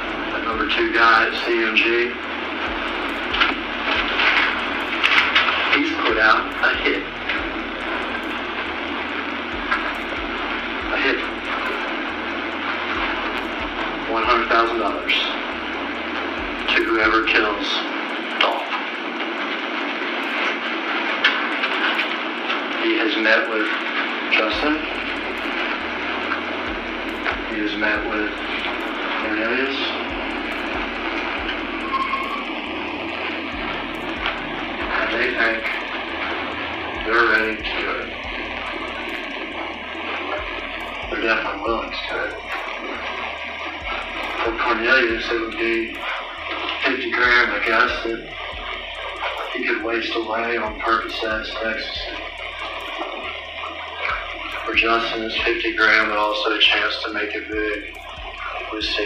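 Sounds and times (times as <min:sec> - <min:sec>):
man's voice: 0:00.0 - 0:08.7, 0:09.6 - 0:18.8, 0:22.8 - 0:53.2, 0:53.9 - 0:59.0
low steady bass: 0:00.0 - 0:17.6, 0:24.5 - 0:59.0
low hum: 0:00.0 - 0:59.0
rushing background noise: 0:00.0 - 0:59.0.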